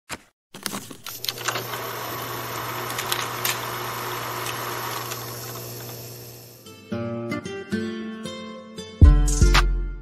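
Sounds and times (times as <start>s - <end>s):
film projector whirring: 1.1s - 6.7s.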